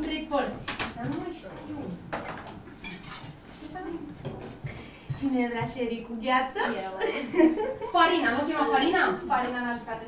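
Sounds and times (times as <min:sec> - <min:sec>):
glasses and tableware clinking: 0:02.8 - 0:03.3.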